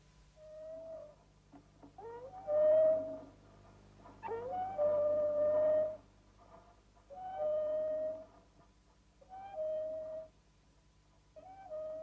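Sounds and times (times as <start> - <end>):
held flute-like notes: 7.2 - 8.3.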